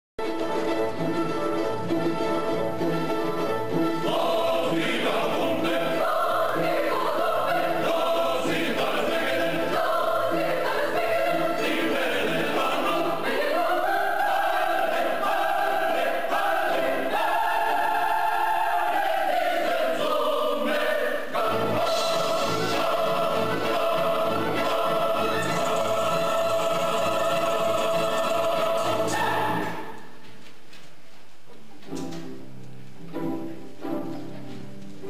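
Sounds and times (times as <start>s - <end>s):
choir singing sustained chords: 2.8s - 30.1s.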